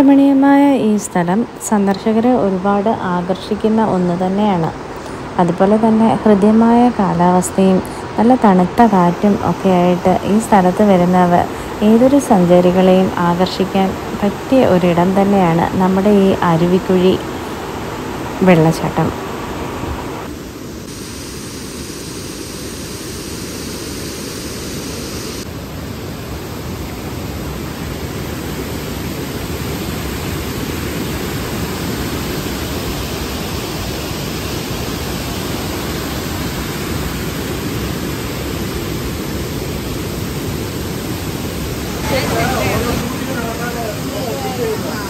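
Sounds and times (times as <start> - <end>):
waterfall rushing over rocks: 26.2 - 45.0.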